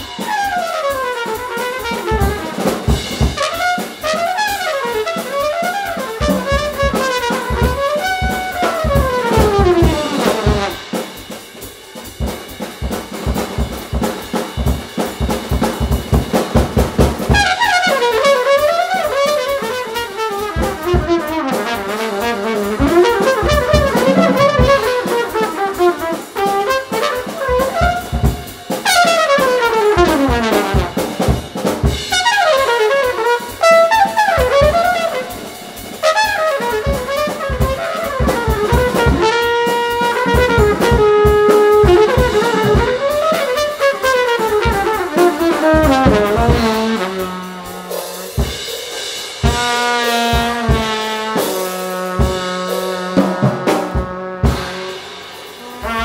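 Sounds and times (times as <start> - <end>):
drum and cymbal strikes: 0.0 - 56.0
jazz trumpet: 0.0 - 56.0.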